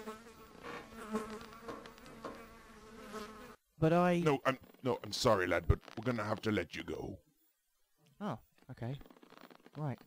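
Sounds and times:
flies buzzing: 0.0s - 3.6s.

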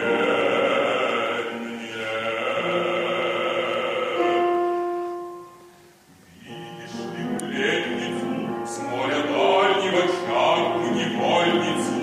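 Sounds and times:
operatic bass singing: 0.0s - 5.4s, 6.3s - 12.0s
piano accompaniment: 0.0s - 12.0s.

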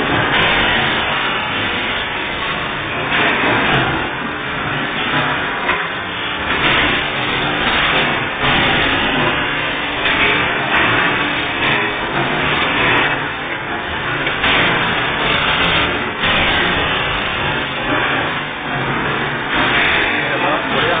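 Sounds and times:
loud machinery noise: 0.0s - 21.0s
indistinct voices: 17.6s - 21.0s.

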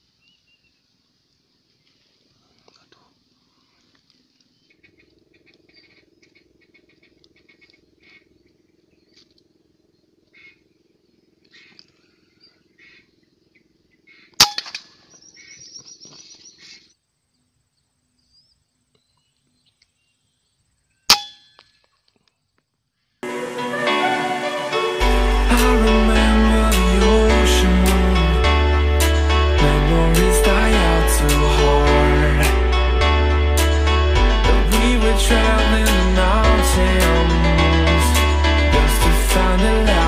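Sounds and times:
faint bird calls: 1.5s - 14.4s.

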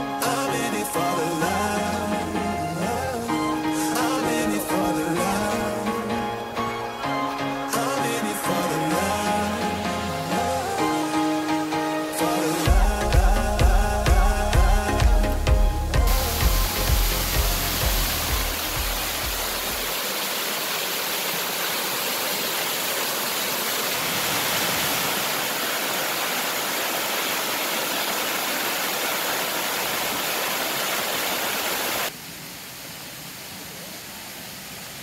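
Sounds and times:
music: 0.0s - 19.9s
waterfall splashing over rocks: 0.0s - 35.0s.

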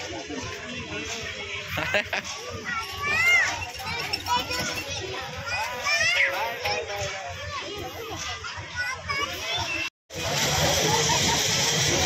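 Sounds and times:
children chattering and shouting: 0.0s - 12.0s.

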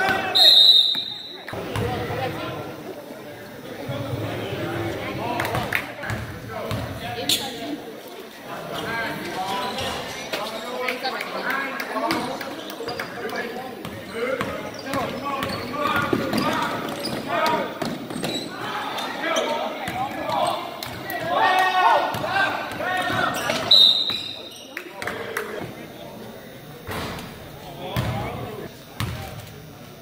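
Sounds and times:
people's voices: 0.0s - 30.0s
basketball bouncing on court: 6.1s - 7.0s, 28.0s - 28.3s, 29.0s - 29.2s.

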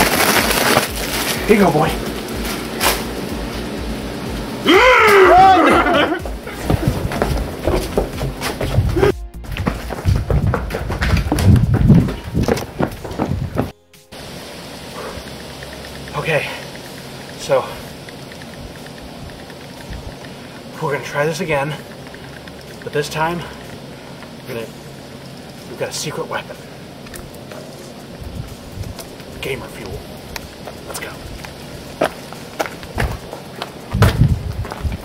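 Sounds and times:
low rumbles: 0.0s - 35.0s
man yelling: 4.7s - 6.2s
low steady hiss: 14.0s - 35.0s
man speaking: 25.7s - 26.6s, 29.4s - 30.0s.

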